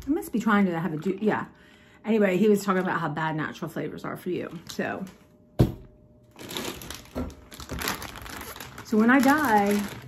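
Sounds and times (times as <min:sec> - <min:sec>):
plastic packaging crinkling: 0:00.1 - 0:01.4, 0:04.4 - 0:05.3, 0:06.2 - 0:10.0.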